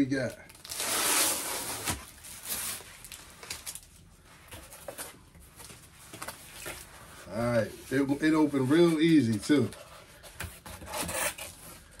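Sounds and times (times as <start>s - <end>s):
package rustling: 1.7s - 6.9s.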